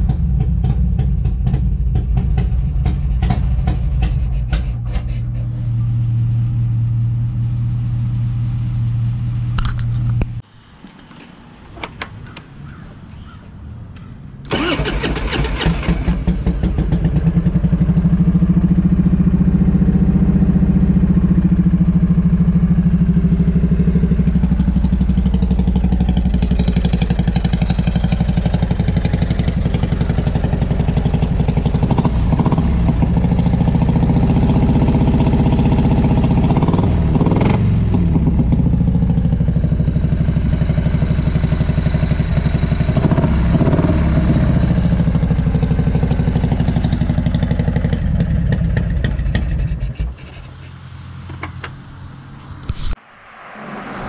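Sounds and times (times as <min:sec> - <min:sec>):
motorcycle engine idling: 0:00.0 - 0:04.9, 0:14.0 - 0:49.8.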